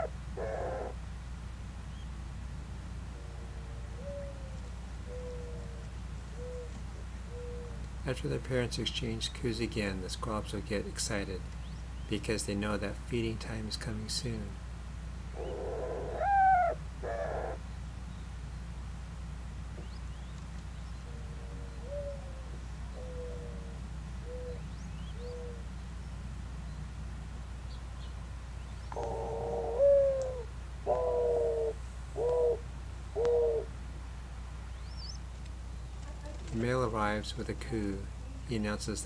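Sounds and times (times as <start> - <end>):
dove cooing: 0.0 - 1.0, 3.1 - 7.8, 15.3 - 17.6, 21.0 - 25.7, 28.9 - 33.8.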